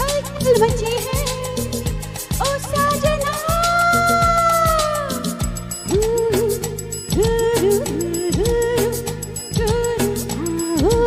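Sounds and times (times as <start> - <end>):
backing track with steady beat: 0.0 - 11.0
woman singing: 0.0 - 11.0.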